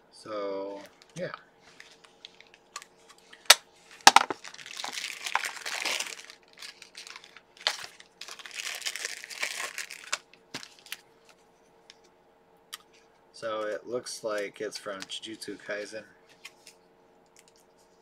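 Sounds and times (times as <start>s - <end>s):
plastic bag crinkling: 3.5s - 11.0s
plastic capsule snapping open: 4.1s - 4.4s.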